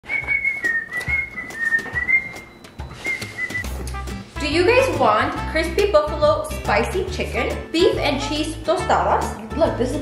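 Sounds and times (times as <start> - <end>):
person whistling a tune: 0.0 - 3.9.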